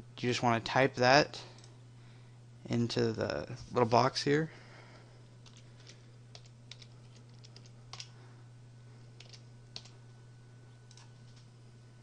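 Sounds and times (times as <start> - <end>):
faint keyboard typing: 5.4 - 8.2, 9.2 - 10.0, 10.8 - 11.5.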